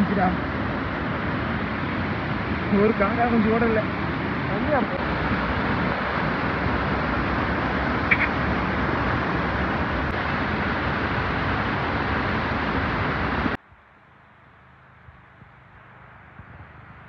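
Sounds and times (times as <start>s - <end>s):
waterfall rushing over rocks: 0.0s - 13.7s.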